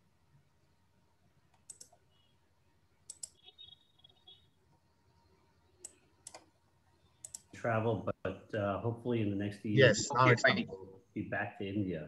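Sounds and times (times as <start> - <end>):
computer mouse clicks: 1.5 - 2.0, 3.1 - 3.4, 5.8 - 6.5, 7.2 - 7.5.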